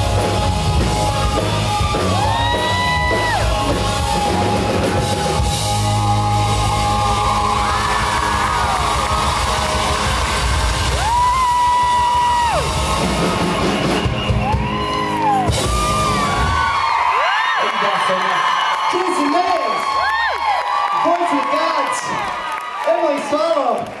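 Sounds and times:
live rock band playing: 0.0 - 16.9
audience whooping and cheering: 0.0 - 24.0.

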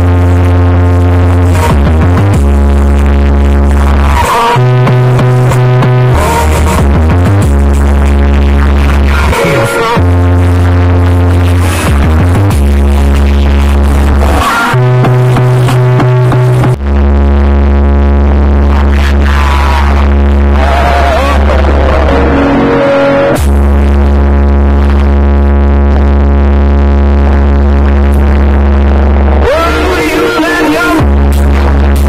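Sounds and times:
loud music with deep bass: 0.0 - 32.0.

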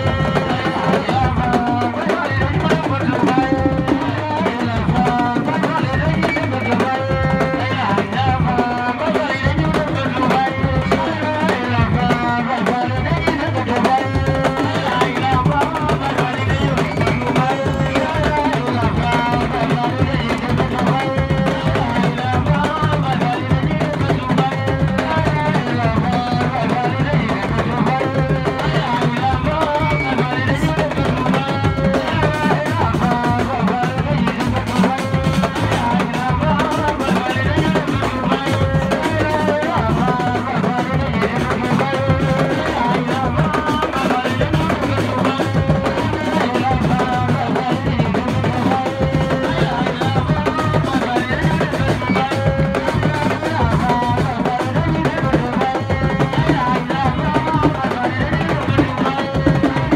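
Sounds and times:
dense drumming and percussion: 0.0 - 59.9.

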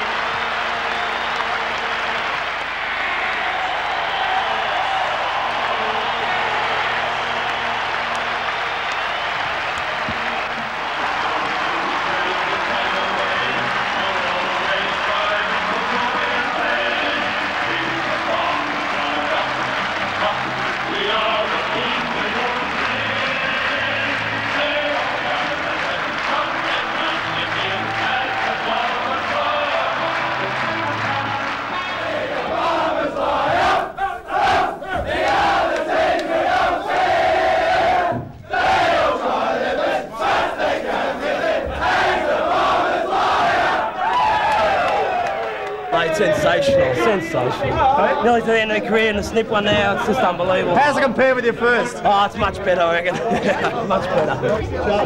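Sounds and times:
stadium crowd cheering: 0.0 - 55.0
men chanting and singing in unison: 11.9 - 44.0.

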